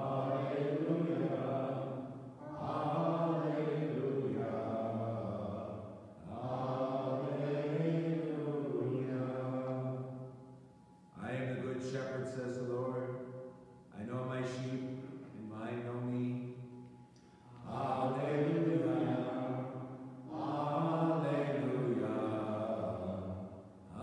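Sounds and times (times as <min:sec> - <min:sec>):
man chanting: 0:08.3 - 0:09.7, 0:11.2 - 0:13.2, 0:13.9 - 0:16.4, 0:17.7 - 0:19.7.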